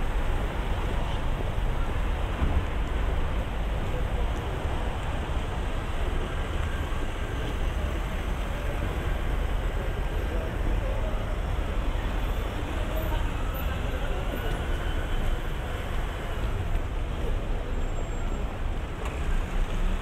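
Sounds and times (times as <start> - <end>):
passers-by talking: 0.8 - 20.0.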